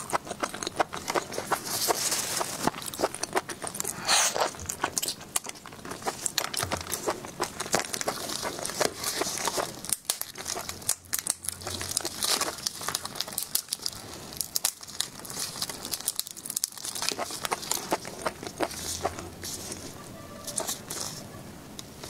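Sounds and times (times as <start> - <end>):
shellfish shell crackling: 0.0 - 21.2
plastic gloves crinkling: 0.0 - 22.0.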